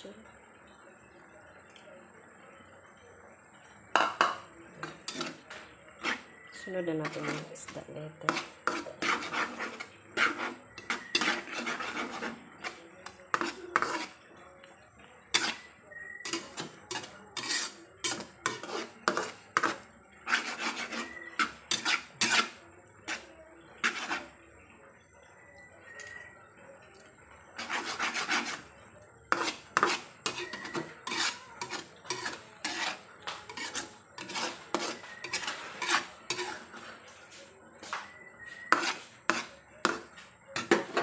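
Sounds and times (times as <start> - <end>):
metal spatula scraping frying pan: 4.0 - 14.3, 15.2 - 24.4, 27.6 - 41.0.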